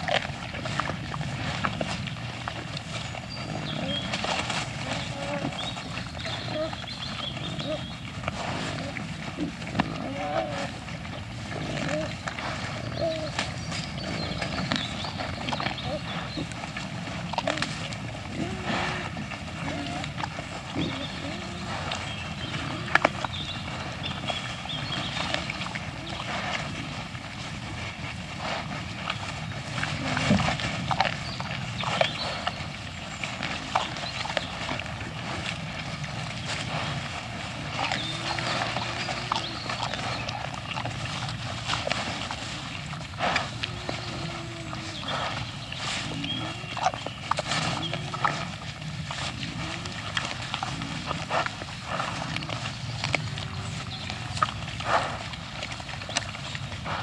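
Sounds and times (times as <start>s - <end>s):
crunching and scuffling over food: 0.0s - 57.0s
wild boar grunting: 0.0s - 57.0s.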